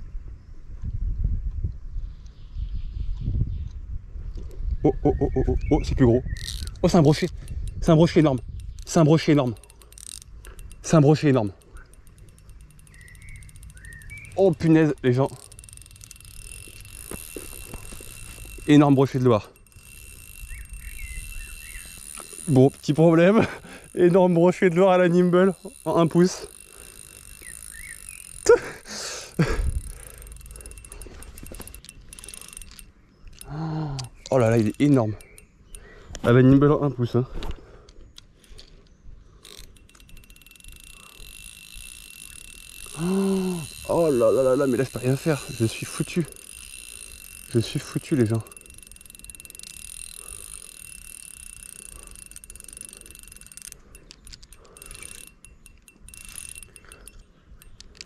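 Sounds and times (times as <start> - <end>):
fishing reel ticking: 5.8 - 36.7, 37.8 - 58.0
person exclaiming: 28.4 - 29.4, 42.9 - 44.0.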